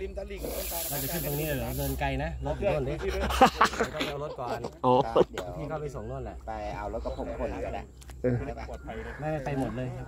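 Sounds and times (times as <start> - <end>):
steady high hiss: 0.0 - 4.0.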